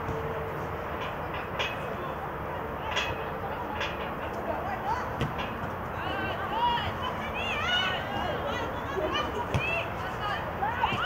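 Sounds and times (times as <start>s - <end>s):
outdoor football pitch background noise: 0.0s - 11.0s.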